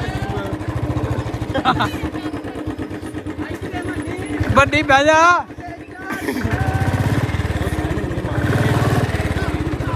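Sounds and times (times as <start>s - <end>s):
motorcycle engine running: 0.0s - 9.9s.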